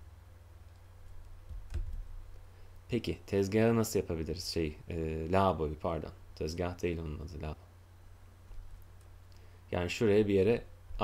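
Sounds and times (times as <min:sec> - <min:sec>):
steady low hum: 0:00.0 - 0:11.0
computer mouse clicks: 0:00.6 - 0:02.1.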